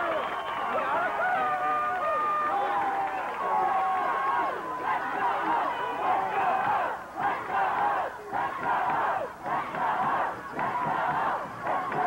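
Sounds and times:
crowd chanting: 0:02.4 - 0:12.0.

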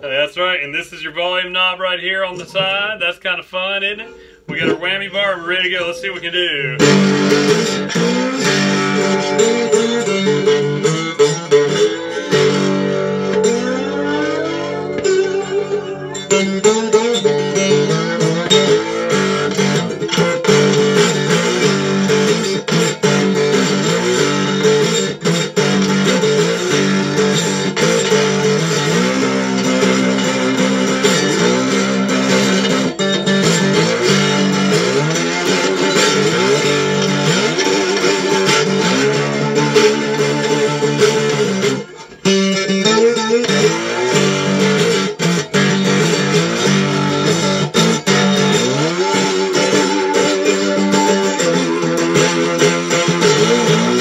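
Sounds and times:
electric guitar bending notes: 0:00.0 - 0:54.0.

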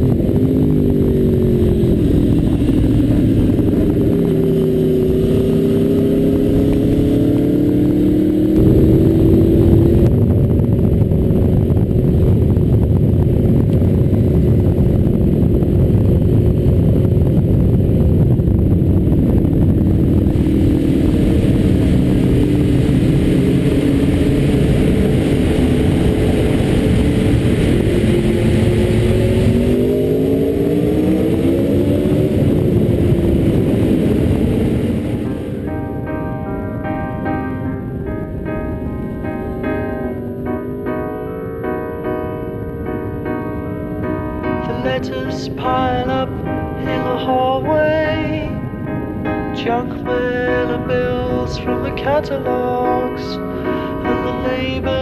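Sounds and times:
motorcycle engine: 0:00.0 - 0:55.0.

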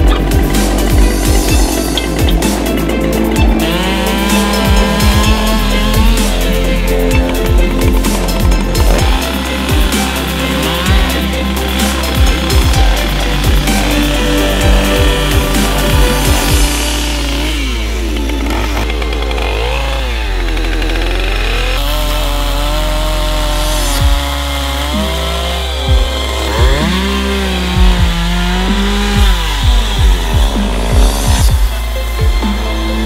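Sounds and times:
electronic music with kick drum: 0:00.0 - 0:17.3, 0:25.8 - 0:27.1, 0:27.7 - 0:33.0
chainsaw revving: 0:00.0 - 0:33.0.

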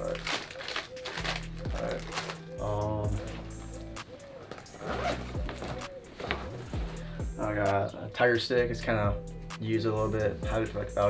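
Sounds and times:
background music with bass: 0:00.0 - 0:00.4, 0:01.1 - 0:11.0
zipper and fabric rustling: 0:04.4 - 0:06.9.

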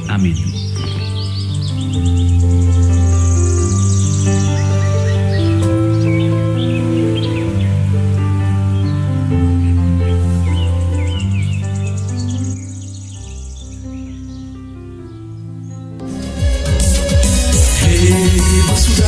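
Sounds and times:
bird chirps: 0:00.0 - 0:16.0
instrumental background music: 0:00.0 - 0:19.0.

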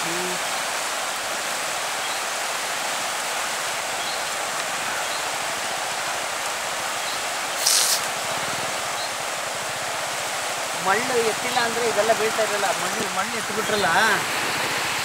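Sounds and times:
river rushing over rapids: 0:00.0 - 0:15.0
brief louder hiss: 0:07.6 - 0:08.2.

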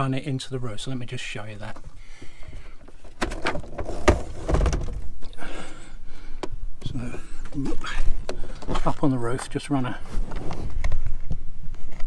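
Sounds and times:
rustling handling noise: 0:07.2 - 0:12.0.

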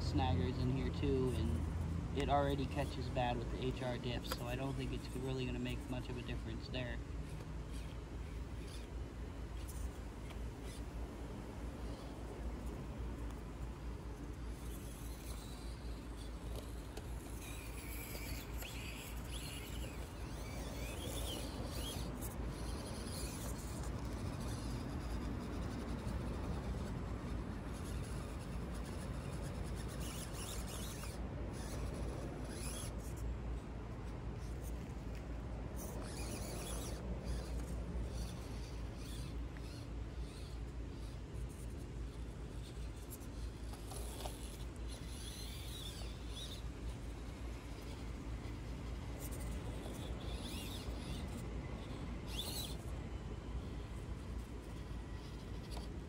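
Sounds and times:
steady low rumble: 0:00.0 - 0:07.2
small motor whining: 0:00.0 - 0:56.0.

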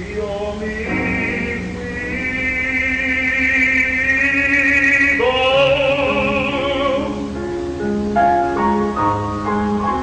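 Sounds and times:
baritone singing long note: 0:00.0 - 0:07.4.

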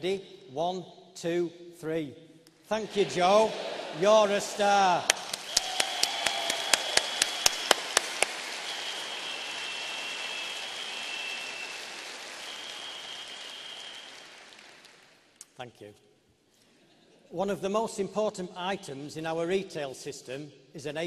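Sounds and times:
audience applauding: 0:02.9 - 0:15.3
sharp close claps: 0:04.9 - 0:15.6.

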